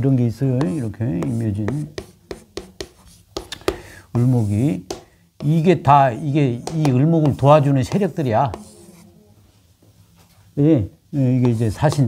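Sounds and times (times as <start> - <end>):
chalk tapping on chalkboard: 0.5 - 9.1, 11.3 - 12.0
chalk scratching: 0.5 - 9.2, 11.4 - 12.0.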